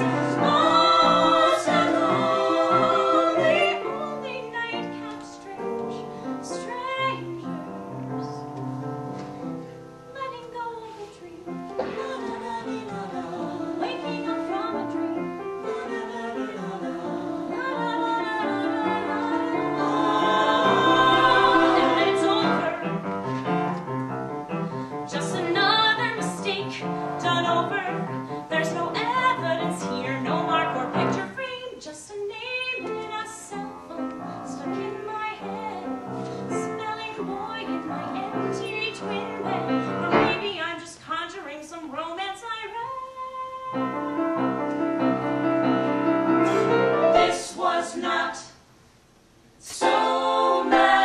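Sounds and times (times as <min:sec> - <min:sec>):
woman singing with vibrato: 0:00.0 - 0:07.7, 0:10.1 - 0:15.0, 0:15.6 - 0:23.0, 0:25.1 - 0:44.2
piano accompaniment: 0:00.0 - 0:31.3, 0:32.6 - 0:40.6, 0:43.7 - 0:48.2.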